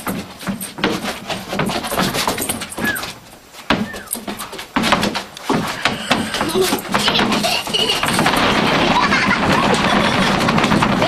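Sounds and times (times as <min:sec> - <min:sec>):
dog squealing: 0:02.8 - 0:03.1, 0:03.8 - 0:04.2.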